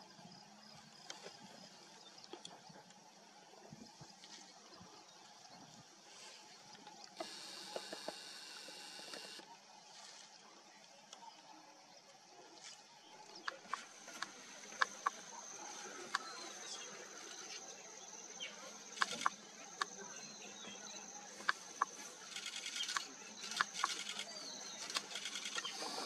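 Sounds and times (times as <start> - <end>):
sharp clicks: 13.4 - 15.2, 19.0 - 19.9, 21.4 - 26.0.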